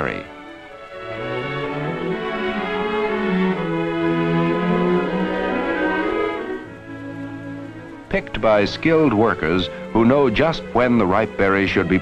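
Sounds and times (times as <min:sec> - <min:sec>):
orchestral strings sustained notes: 0:00.0 - 0:12.0.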